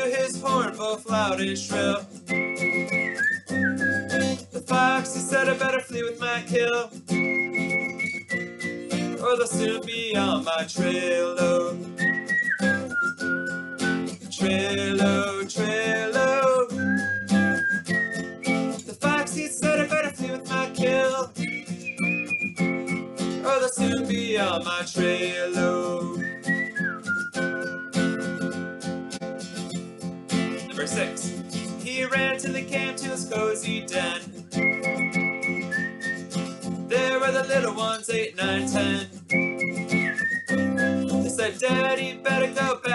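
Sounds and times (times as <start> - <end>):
man singing: 0.0 - 2.2, 4.1 - 7.8, 9.0 - 12.0, 14.2 - 17.0, 18.8 - 21.5, 23.4 - 26.6, 30.5 - 34.6, 36.9 - 39.9, 40.9 - 42.9
acoustic guitar strumming: 0.0 - 42.9
whistled note: 2.3 - 4.2, 7.2 - 9.0, 12.0 - 14.1, 16.8 - 18.8, 21.4 - 23.1, 26.2 - 29.8, 34.6 - 36.4, 39.3 - 41.2.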